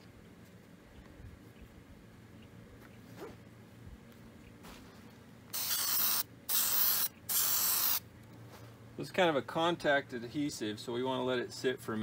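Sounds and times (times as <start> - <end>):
aerosol spray hissing: 5.5 - 8.0.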